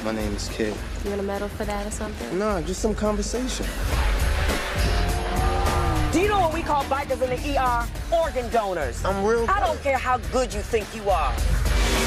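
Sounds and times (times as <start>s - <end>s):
film trailer music score: 0.0s - 12.0s
motorcycle engine revving: 3.8s - 7.2s.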